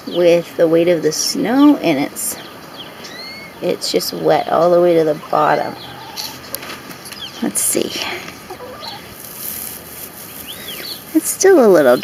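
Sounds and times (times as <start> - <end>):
straw rustling: 2.4 - 12.0
chicken clucks: 8.3 - 9.3.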